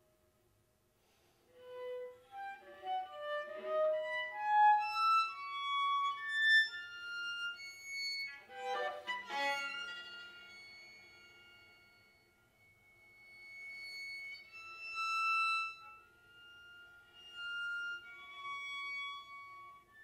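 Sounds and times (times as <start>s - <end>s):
solo bowed string instrument: 1.0s - 20.0s.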